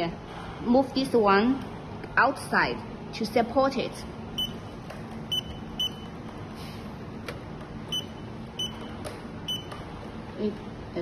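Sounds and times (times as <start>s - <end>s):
keypad beeping: 4.4s - 4.6s, 5.3s - 6.2s, 7.9s - 9.8s.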